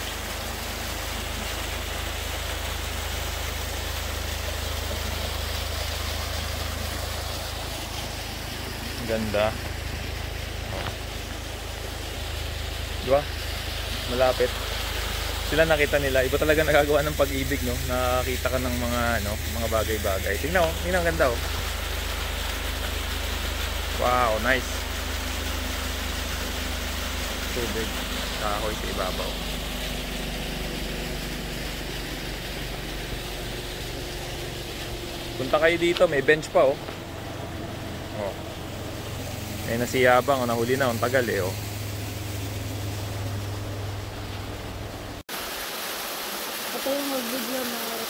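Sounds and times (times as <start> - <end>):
waterfall pouring into pool: 0.0 - 43.6, 45.2 - 48.0
steady hiss: 0.0 - 44.6
low hum: 0.0 - 45.2.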